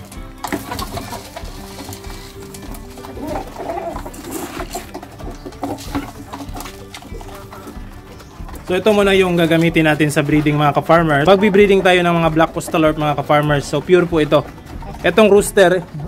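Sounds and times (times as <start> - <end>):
background music held tones: 0.0 - 16.0
chickens clucking: 0.0 - 16.0
chickens pecking wooden trough: 0.0 - 16.0.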